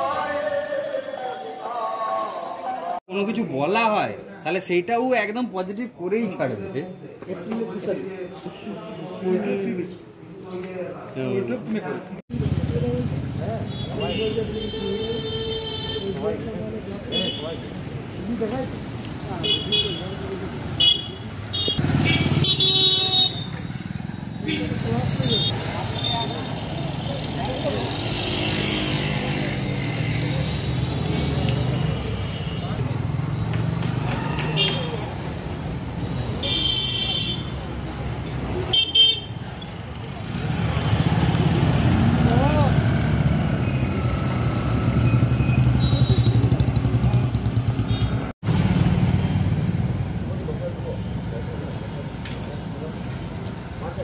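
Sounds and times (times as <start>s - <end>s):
motorcycles and scooters passing: 12.3s - 13.6s, 21.4s - 36.0s, 39.7s - 54.0s.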